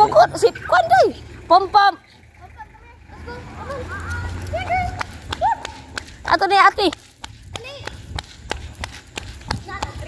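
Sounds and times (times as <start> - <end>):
low handling rumble: 0.0 - 10.0
dog paws pattering on pavement: 2.6 - 10.0
footsteps on pavement: 3.6 - 10.0.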